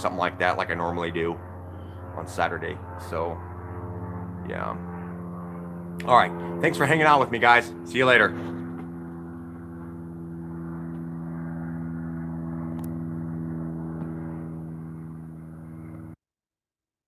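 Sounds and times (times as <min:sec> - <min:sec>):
low mechanical hum: 0:00.0 - 0:16.2.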